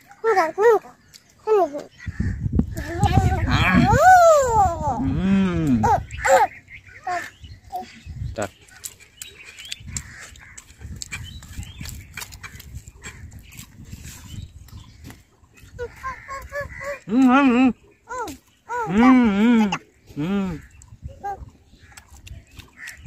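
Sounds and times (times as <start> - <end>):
eating and chewing clicks: 0.8 - 2.0, 8.4 - 23.0.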